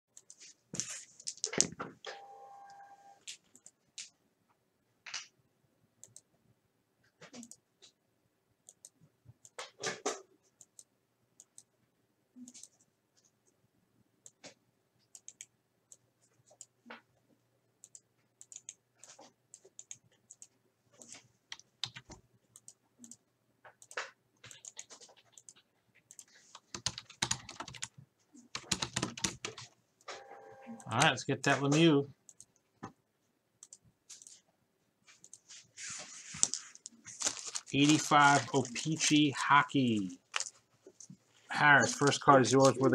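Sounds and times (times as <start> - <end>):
computer mouse buttons clicking: 6.0 - 6.3, 8.6 - 9.6, 15.1 - 16.0, 17.8 - 23.2, 23.8 - 27.9, 33.6 - 34.4
faint clicks and handling noises: 14.2 - 30.2, 33.6 - 42.9
plastic crinkling: 36.2 - 38.8, 40.3 - 40.6.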